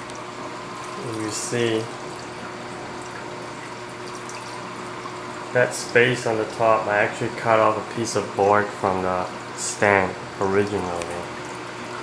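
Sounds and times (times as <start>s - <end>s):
water trickling and splashing: 0.0s - 7.4s, 10.5s - 12.0s
thin steady hum: 0.0s - 12.0s.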